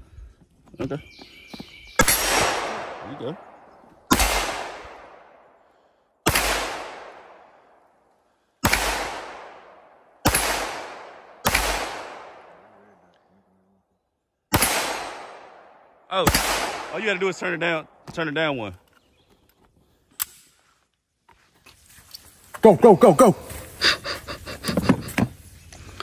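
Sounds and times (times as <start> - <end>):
pistol shots with echo: 2.0 - 5.6, 6.2 - 7.8, 8.6 - 12.9, 14.5 - 18.0.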